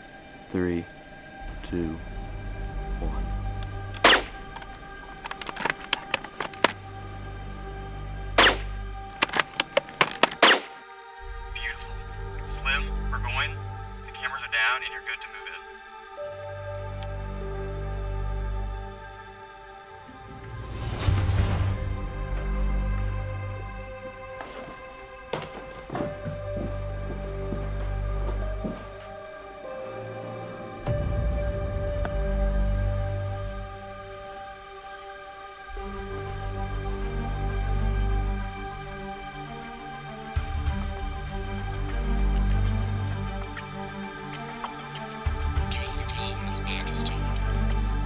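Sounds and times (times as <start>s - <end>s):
background music with low drone: 0.0s - 48.0s
low bass drone: 0.5s - 5.3s
sharp clicks and cracks: 3.6s - 6.8s, 9.2s - 10.7s.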